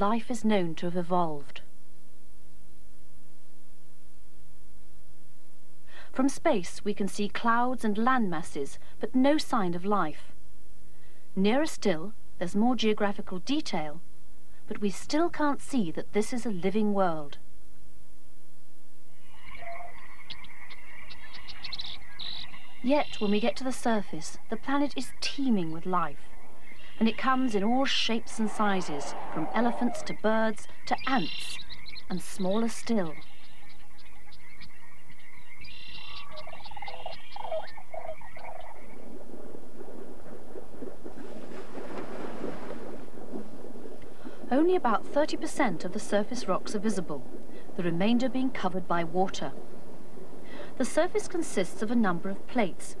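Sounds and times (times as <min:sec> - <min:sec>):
insects chirring: 0:18.9 - 0:23.6, 0:24.4 - 0:32.2, 0:33.1 - 0:52.6
frogs calling: 0:19.1 - 0:23.7, 0:24.3 - 0:41.3
rushing water: 0:37.7 - 0:52.6.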